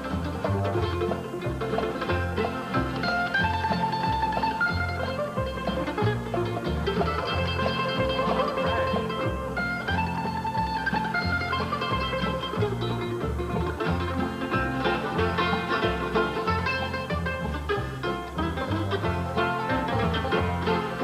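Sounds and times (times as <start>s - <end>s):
bluegrass band playing: 0.0s - 21.0s
mandolin picking lead: 0.0s - 21.0s.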